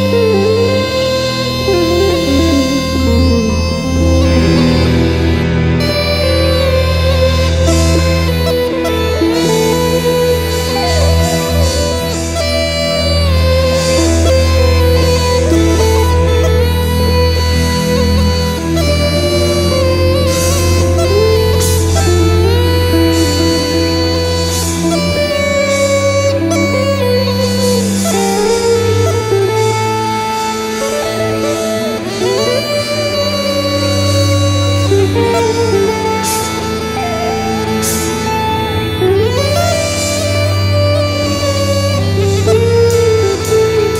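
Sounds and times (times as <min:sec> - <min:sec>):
bagpipe melody over drone: 0:00.0 - 0:43.9.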